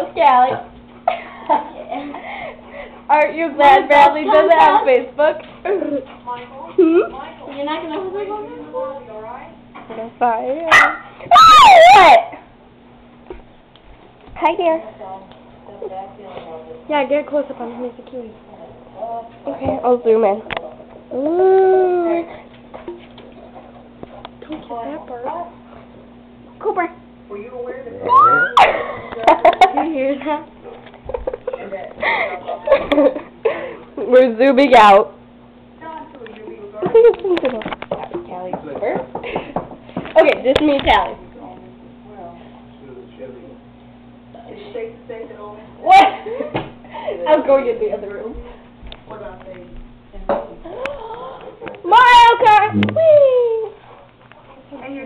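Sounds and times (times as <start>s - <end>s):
girl shouting: 10.7s - 12.4s.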